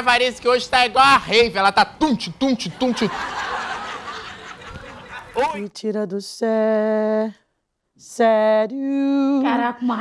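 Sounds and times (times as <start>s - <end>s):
audience laughter: 2.8s - 5.6s.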